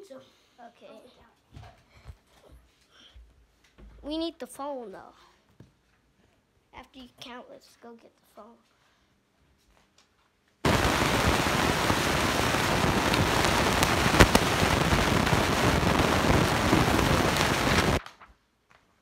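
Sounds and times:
steady crackling hiss: 0:10.6 - 0:18.0
sharp crack: 0:10.7 - 0:18.0.

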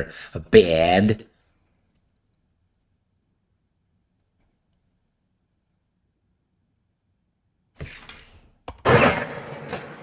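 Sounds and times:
click: 0:01.9 - 0:02.4, 0:04.2 - 0:04.8.

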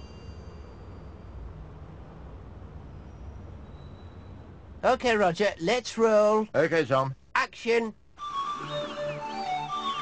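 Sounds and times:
high ringing chime: 0:00.0 - 0:02.0, 0:02.8 - 0:04.6
low rumble of traffic: 0:00.0 - 0:08.2.

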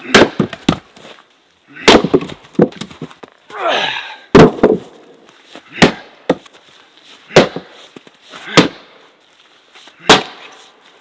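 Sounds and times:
firewood pieces clattering: 0:01.9 - 0:03.4.

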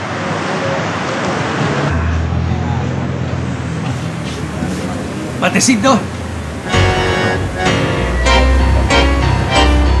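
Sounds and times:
street traffic noise: 0:00.0 - 0:10.0.

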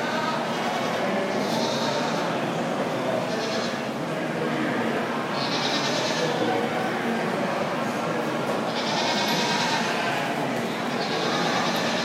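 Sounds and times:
goats bleating: 0:00.0 - 0:02.3, 0:03.3 - 0:03.9, 0:05.3 - 0:06.4, 0:08.7 - 0:12.0
arena crowd noise: 0:00.0 - 0:12.0.

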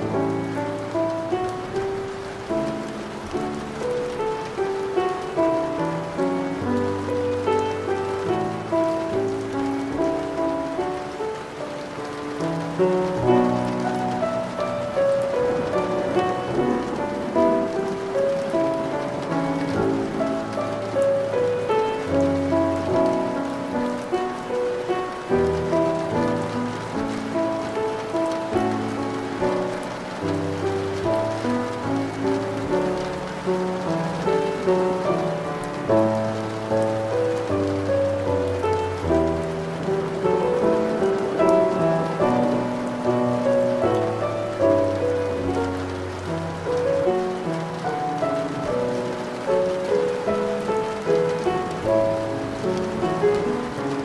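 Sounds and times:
steady rain falling: 0:00.0 - 0:54.0.

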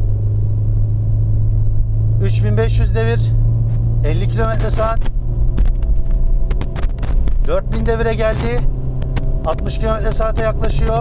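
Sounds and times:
car engine droning at full throttle: 0:00.0 - 0:11.0
sharp clicks: 0:04.4 - 0:11.0.

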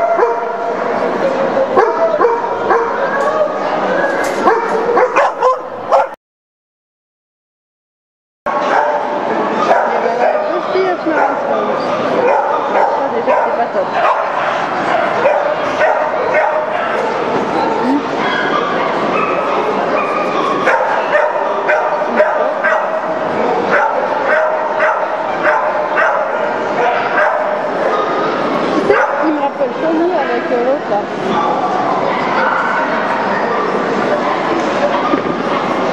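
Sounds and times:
dogs barking and yipping: 0:00.0 - 0:00.9, 0:01.7 - 0:03.2, 0:04.1 - 0:06.2, 0:08.5 - 0:17.3, 0:18.1 - 0:29.4, 0:31.3 - 0:35.9
crowd chatter: 0:00.0 - 0:06.2, 0:08.5 - 0:35.9.

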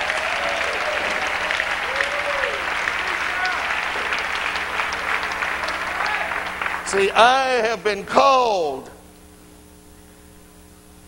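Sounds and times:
crowd applauding: 0:00.0 - 0:07.8.

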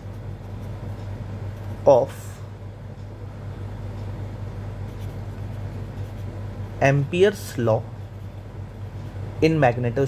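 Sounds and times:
marker scratching on paper: 0:00.0 - 0:01.9, 0:04.8 - 0:06.5
low room hum: 0:00.0 - 0:10.0.

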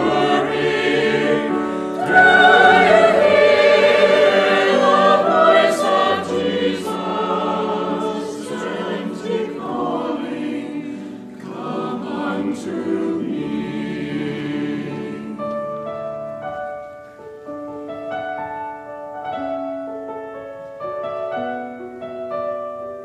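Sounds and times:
choir singing in parts: 0:00.0 - 0:16.0
piano: 0:00.0 - 0:23.0.

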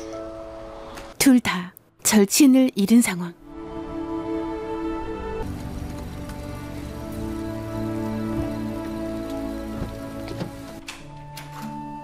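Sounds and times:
soft music with long held notes: 0:00.0 - 0:01.2, 0:03.4 - 0:12.0
steady rain: 0:05.4 - 0:10.8.

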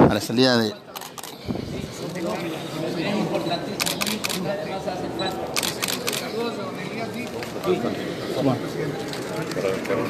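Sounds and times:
crowd chatter: 0:00.0 - 0:10.0
camera shutter clicks: 0:03.8 - 0:04.4, 0:05.6 - 0:06.3.

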